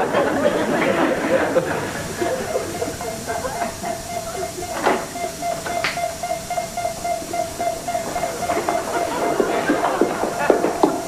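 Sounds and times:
faint hiss: 0:00.0 - 0:11.0
steady high electronic tone: 0:00.7 - 0:11.0.

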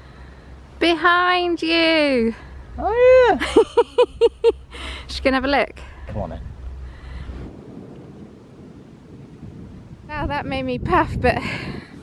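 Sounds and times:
wind buffeting microphone: 0:01.4 - 0:12.0.

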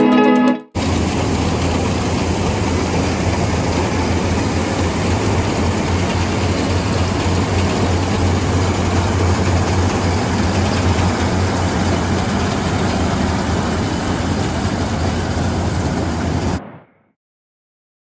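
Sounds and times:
combine harvester engine drone: 0:00.8 - 0:16.6
rushing threshing noise: 0:00.8 - 0:16.7.

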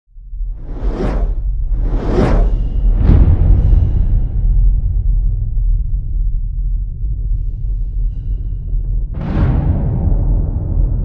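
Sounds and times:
deep rumble: 0:00.1 - 0:11.0
whoosh: 0:00.5 - 0:05.1.

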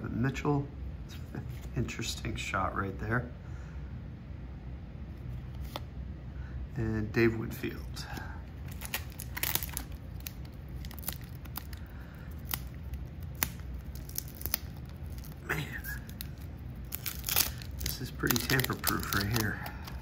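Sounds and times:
wax-paper wrapper tearing open: 0:08.6 - 0:20.0.

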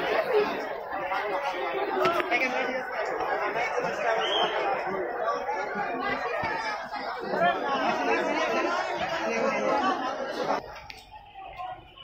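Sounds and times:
crowd of people talking: 0:00.0 - 0:12.0.

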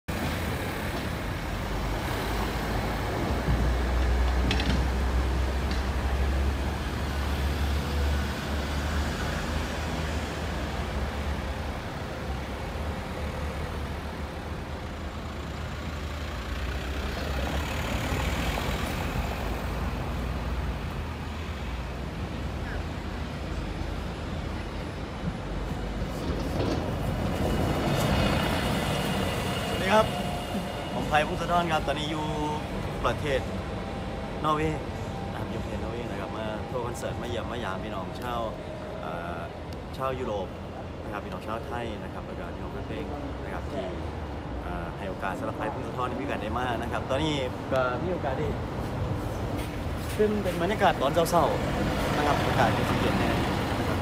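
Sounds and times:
low traffic rumble: 0:00.1 - 0:54.0
vehicle engines passing: 0:00.1 - 0:54.0.

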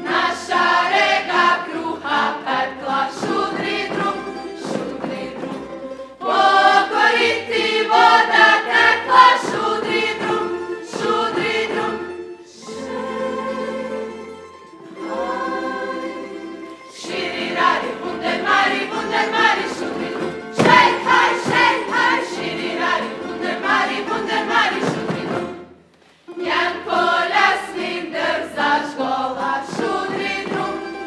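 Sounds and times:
group singing folk song: 0:00.0 - 0:31.0
plucked string accompaniment: 0:00.0 - 0:31.0.

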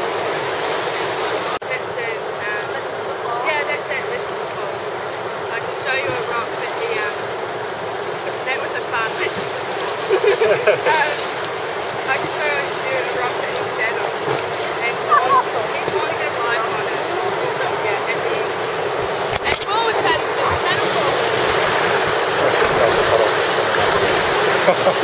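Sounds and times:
rushing river water: 0:00.0 - 0:25.0.

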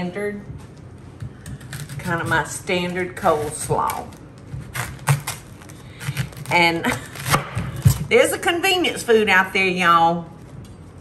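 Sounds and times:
knife cutting cabbage on board: 0:01.3 - 0:08.0.

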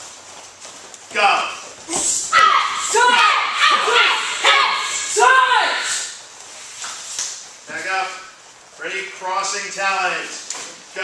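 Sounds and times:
people shouting loud yells: 0:01.9 - 0:06.2.

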